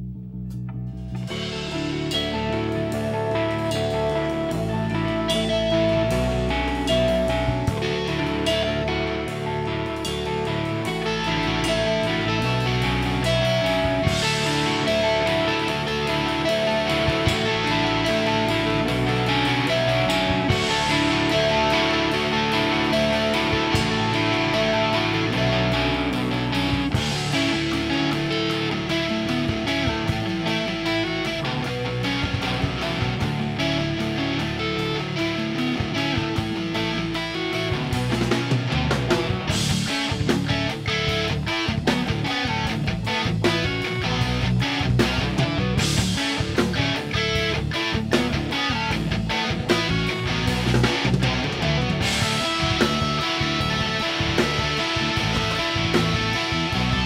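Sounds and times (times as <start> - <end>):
bass guitar: 0.0 - 57.0
drum kit: 0.0 - 57.0
electric guitars: 0.0 - 57.0
cymbals: 1.2 - 57.0.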